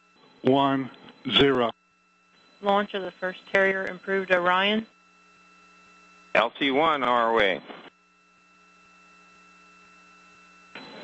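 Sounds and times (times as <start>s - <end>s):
faint electrical hum: 0.0s - 11.0s
high whining tones: 0.0s - 11.0s
radio hiss: 0.5s - 1.7s, 6.3s - 7.9s.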